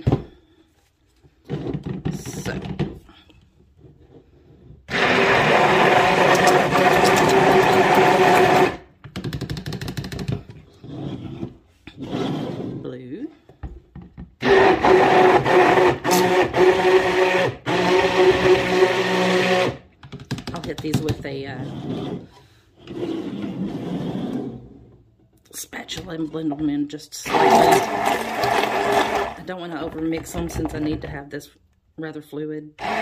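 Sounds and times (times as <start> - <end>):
stick blender running: 4.9 - 8.9, 14.4 - 19.9, 27.3 - 30.0, 32.8 - 33.0
knocks and stirring in pitcher: 4.9 - 9.5, 25.3 - 31.3.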